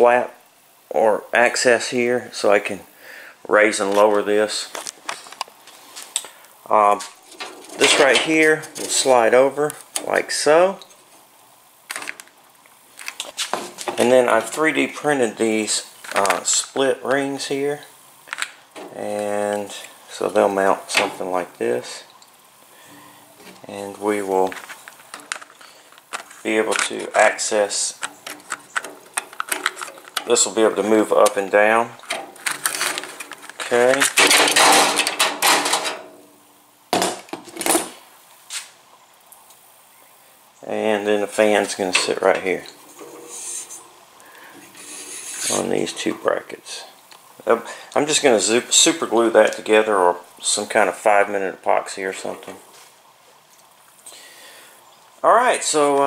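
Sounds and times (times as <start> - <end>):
plastic hose clicking and scraping: 24.4 - 36.0.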